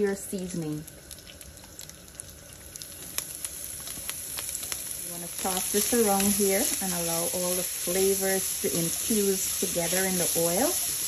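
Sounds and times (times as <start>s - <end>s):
meat sizzling in hot oil: 0.0s - 11.0s
oil crackling and popping: 0.0s - 11.0s.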